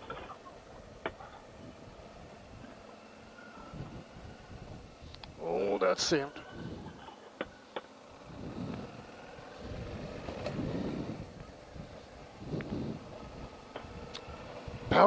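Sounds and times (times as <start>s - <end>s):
wind noise: 0.0s - 2.8s, 3.6s - 7.2s, 8.2s - 15.0s
muffled motorcycle engine: 0.0s - 15.0s.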